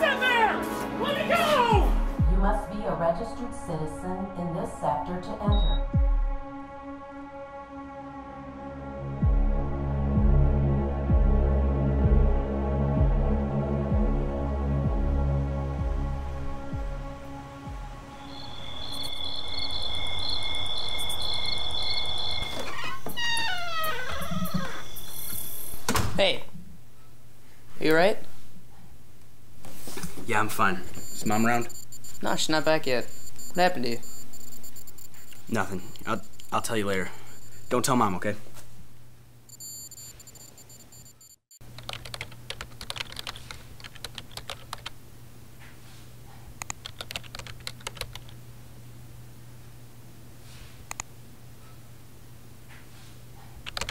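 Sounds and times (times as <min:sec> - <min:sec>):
crickets chirping: 0:18.0 - 0:23.0, 0:23.6 - 0:25.9, 0:31.0 - 0:37.9
computer keyboard typing: 0:41.7 - 0:44.9, 0:46.6 - 0:48.4, 0:53.6 - 0:53.9.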